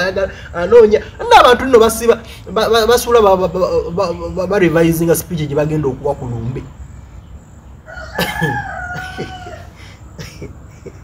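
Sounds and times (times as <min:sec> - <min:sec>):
rooster crowing: 0:07.7 - 0:11.0.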